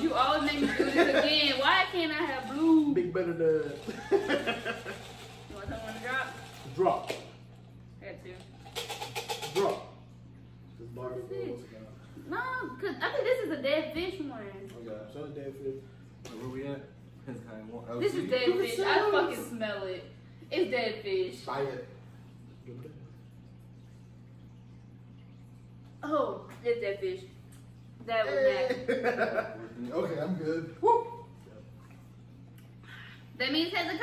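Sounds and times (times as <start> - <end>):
low steady hum: 0.0 - 34.0.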